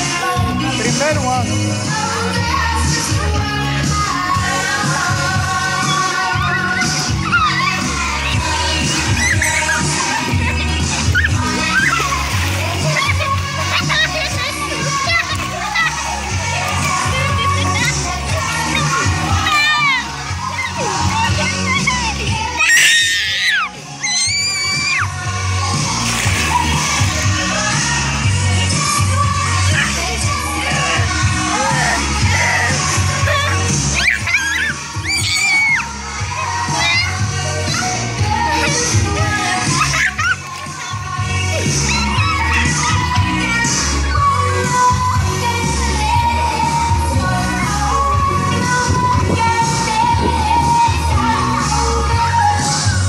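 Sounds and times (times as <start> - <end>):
music with steady bass line: 0.0 - 53.0
water splashing: 1.8 - 53.0
children calling out: 4.0 - 53.0
child shouting: 18.8 - 25.0.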